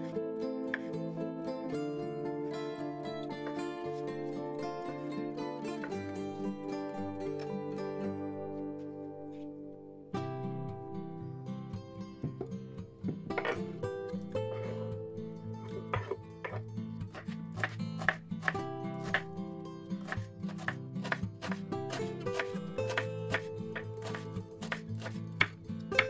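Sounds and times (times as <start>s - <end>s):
background music: 0.0s - 26.0s
knife chopping on wooden board: 15.9s - 19.2s, 20.0s - 26.0s.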